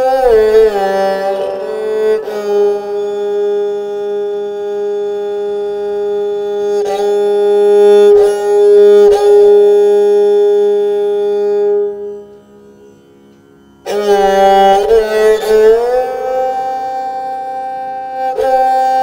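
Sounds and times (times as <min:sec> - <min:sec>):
bowed string instrument sustained note: 0:00.0 - 0:19.0.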